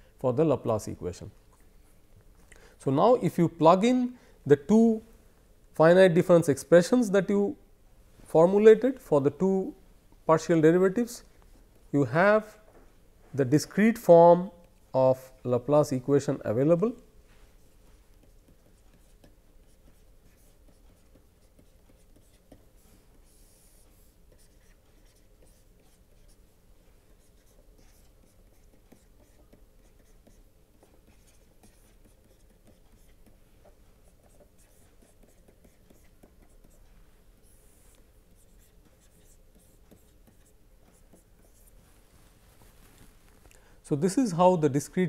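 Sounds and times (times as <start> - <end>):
steady low hum: 0.0 - 44.8
stylus scratching on tablet: 16.4 - 43.1.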